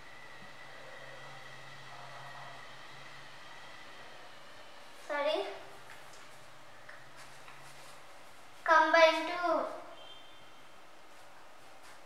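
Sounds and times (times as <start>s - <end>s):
thin high whine: 0.0s - 6.5s, 8.6s - 11.3s
room noise hiss: 0.0s - 12.0s.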